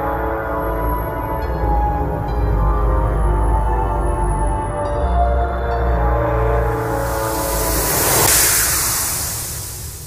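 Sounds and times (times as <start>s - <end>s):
low rumble: 6.6s - 10.0s
loud rushing noise: 6.7s - 10.0s.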